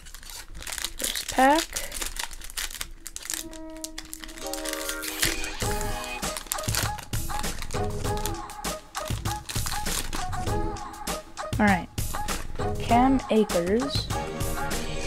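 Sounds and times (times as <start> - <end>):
foil wrapper crinkling and tearing: 0.0 - 10.5
background music: 3.2 - 15.0.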